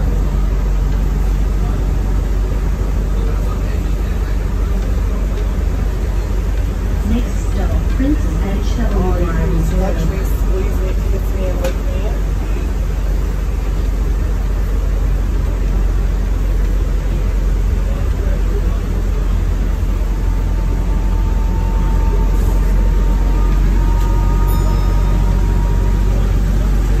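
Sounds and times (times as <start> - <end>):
bus diesel engine drone: 0.0 - 27.0
road noise: 0.0 - 27.0.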